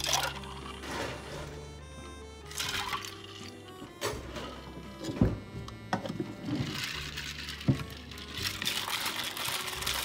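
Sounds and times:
ice cubes clattering into cup: 0:00.0 - 0:01.2, 0:06.5 - 0:10.0
background music: 0:00.0 - 0:10.0.

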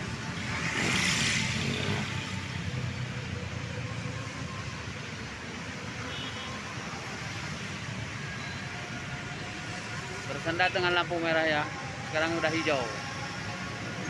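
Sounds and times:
traffic passing: 0:00.0 - 0:14.0.

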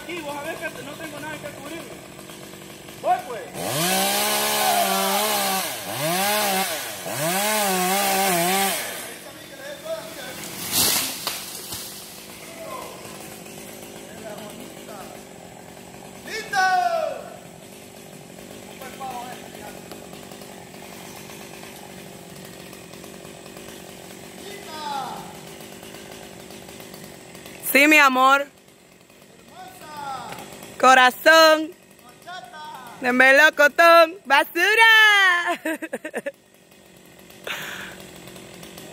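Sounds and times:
chainsaw revving: 0:00.0 - 0:38.9.

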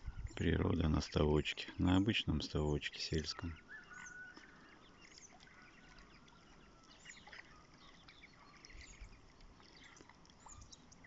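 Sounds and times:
faint bird chirps: 0:02.6 - 0:11.0.

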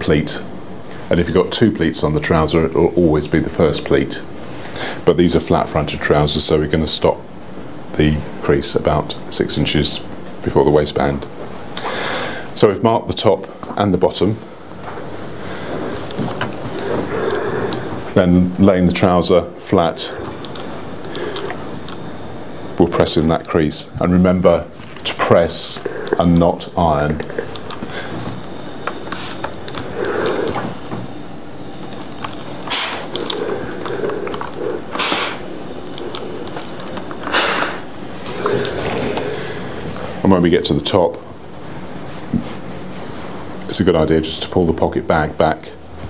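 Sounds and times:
steam iron hissing: 0:15.0 - 0:41.1.

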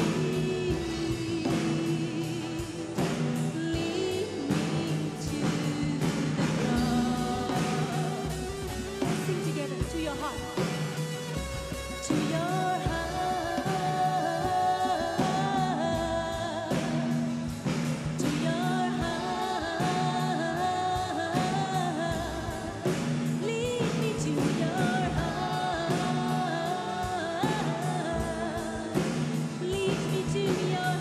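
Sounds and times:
person singing: 0:00.0 - 0:11.0, 0:12.0 - 0:31.0
keyboard: 0:00.0 - 0:31.0
steady drum beat: 0:00.0 - 0:31.0.

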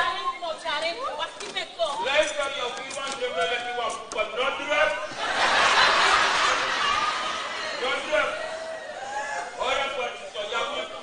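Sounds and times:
actors talking: 0:00.0 - 0:11.0.

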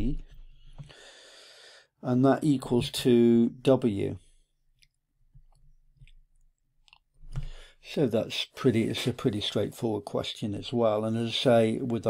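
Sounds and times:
person speaking: 0:02.0 - 0:04.2, 0:07.8 - 0:12.0.

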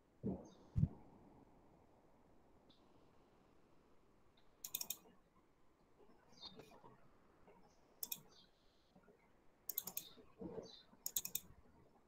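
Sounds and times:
computer clicking: 0:04.6 - 0:05.0, 0:08.0 - 0:08.3, 0:09.7 - 0:10.1, 0:11.0 - 0:11.5.

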